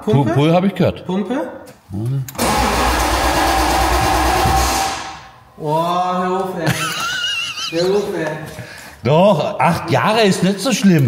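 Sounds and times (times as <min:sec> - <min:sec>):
car engine starting: 0:02.3 - 0:05.4.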